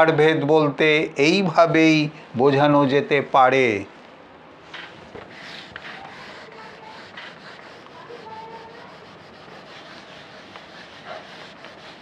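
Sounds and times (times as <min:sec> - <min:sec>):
duster rubbing on whiteboard: 0:04.8 - 0:12.0.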